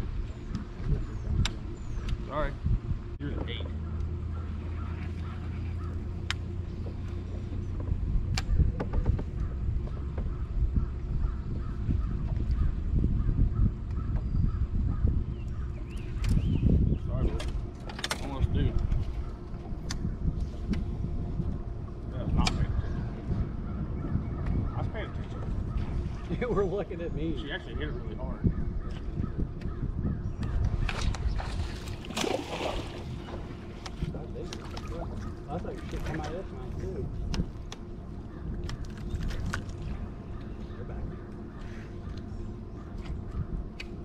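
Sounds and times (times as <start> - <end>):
low wind rumble: 0.0 - 44.0
trolling motor electric hum: 0.0 - 44.0.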